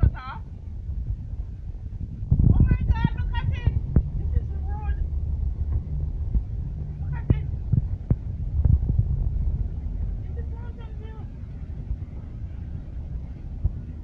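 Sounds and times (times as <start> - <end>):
voices: 0.0 - 0.5, 2.5 - 5.8, 6.8 - 7.6, 10.1 - 11.5
vehicle rumble from inside cabin: 0.0 - 14.0.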